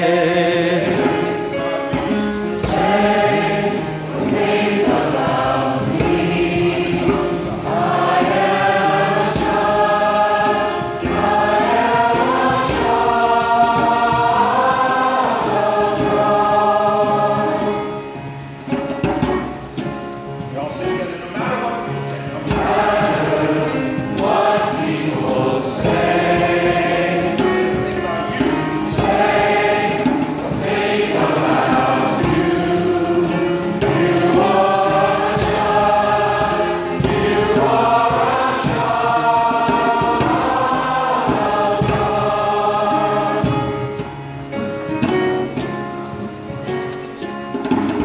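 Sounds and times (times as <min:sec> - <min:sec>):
choir singing sustained chords: 0:00.0 - 0:46.5.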